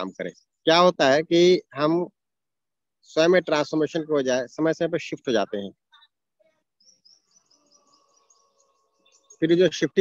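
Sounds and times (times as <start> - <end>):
bird chirping faintly: 4.9 - 10.0.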